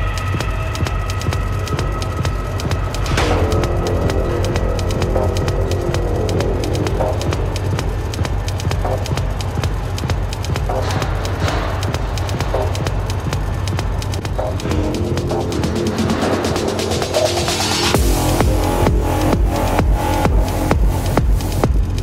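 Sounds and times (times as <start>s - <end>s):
deep bass: 0.0s - 22.0s
music with ticking beat: 0.0s - 22.0s
sustained tones: 0.0s - 22.0s.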